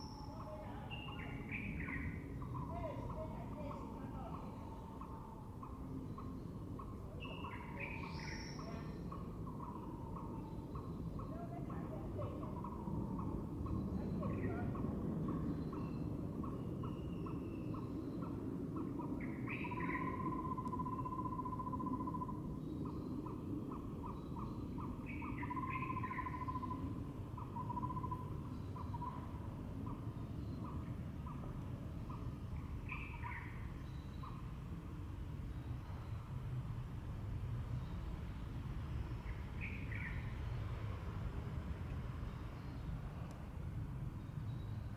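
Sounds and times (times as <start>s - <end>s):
birds calling: 0.0s - 36.3s
steady low rumble: 0.0s - 44.9s.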